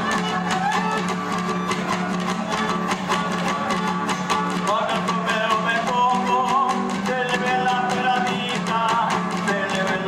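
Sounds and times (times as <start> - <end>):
small drum beats: 0.0 - 10.0
strummed guitar: 0.0 - 10.0.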